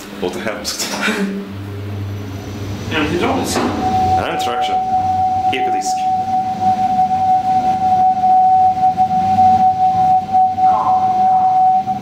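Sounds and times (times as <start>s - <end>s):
elevator drive high-pitched whine: 0.0s - 12.0s
low rumble of elevator ride: 0.0s - 12.0s.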